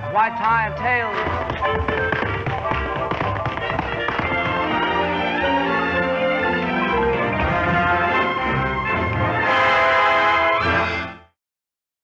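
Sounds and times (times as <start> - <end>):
orchestral music: 0.0 - 11.4
tap shoes clicking on stage: 0.3 - 5.0.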